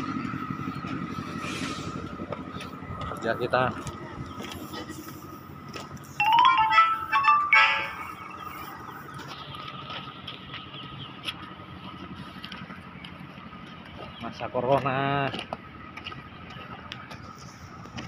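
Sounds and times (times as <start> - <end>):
constant high whine: 0.0 - 18.0
construction machinery: 0.0 - 18.0
short electronic melody: 6.2 - 8.8.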